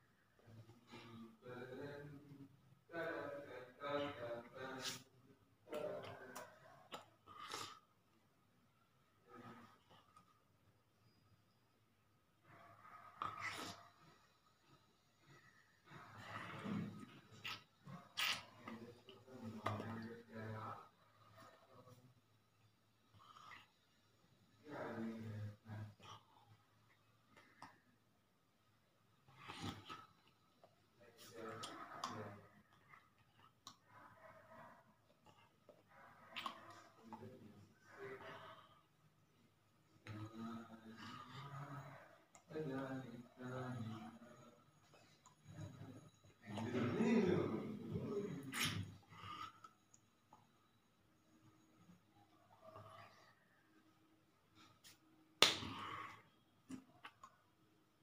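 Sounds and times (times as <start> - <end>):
sharp hand slap: 55.4 - 55.7.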